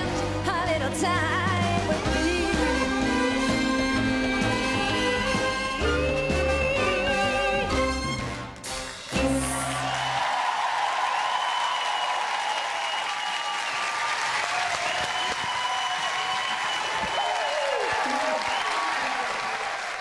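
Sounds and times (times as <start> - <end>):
audience applauding: 8.8 - 20.0
cheering voices: 9.2 - 20.0.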